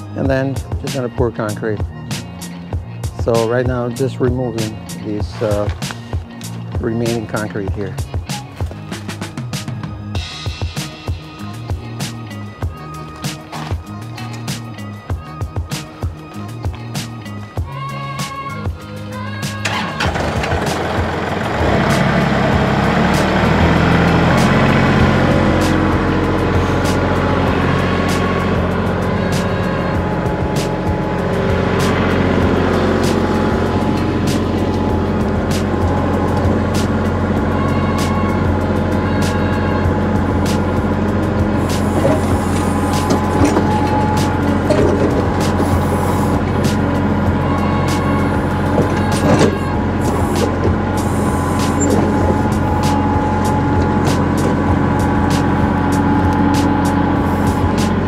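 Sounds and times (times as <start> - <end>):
tractor diesel engine revving: 19.4 - 58.0.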